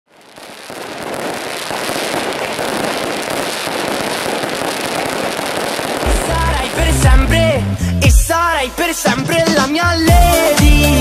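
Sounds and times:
fireworks crackling: 0:00.1 - 0:11.0.

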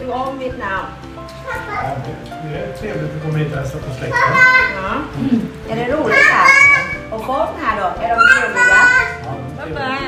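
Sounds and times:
background music: 0:00.0 - 0:10.0
children's voices: 0:04.1 - 0:04.8, 0:06.1 - 0:07.0, 0:08.2 - 0:09.2.

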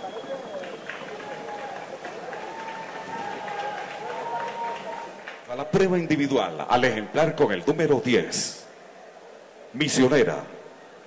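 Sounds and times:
crowd murmuring: 0:00.0 - 0:05.5.

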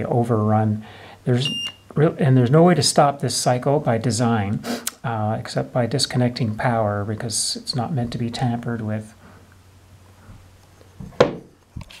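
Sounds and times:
box knocking on desk: 0:11.0 - 0:11.5
box thudding on desk: 0:11.0 - 0:11.6.

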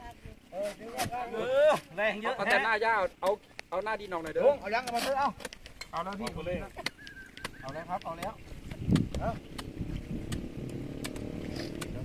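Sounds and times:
engine humming: 0:08.2 - 0:12.0.

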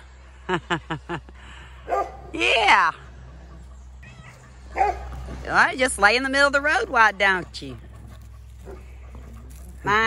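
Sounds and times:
cat meowing: 0:04.0 - 0:04.5.

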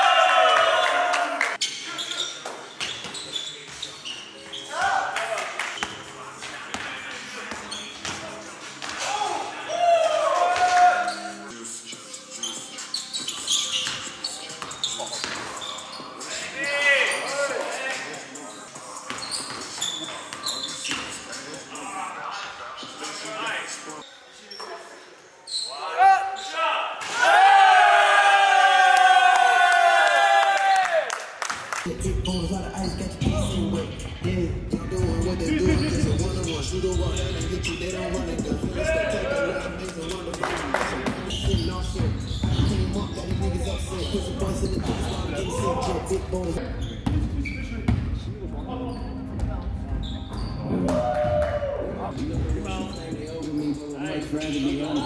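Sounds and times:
group shouting: 0:00.0 - 0:01.5, 0:27.0 - 0:31.1
players' voices: 0:00.0 - 0:28.1, 0:31.9 - 0:55.0
sneakers squeaking: 0:01.6 - 0:05.2, 0:05.8 - 0:09.6, 0:10.6 - 0:23.8, 0:24.4 - 0:26.5, 0:31.8 - 0:50.9, 0:52.1 - 0:55.0
players calling out: 0:31.9 - 0:47.6.

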